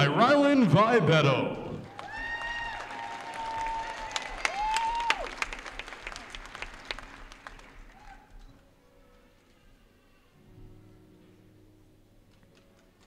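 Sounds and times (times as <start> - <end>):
audience clapping: 1.8 - 8.3
shrill cheers: 1.9 - 5.5, 7.9 - 8.3.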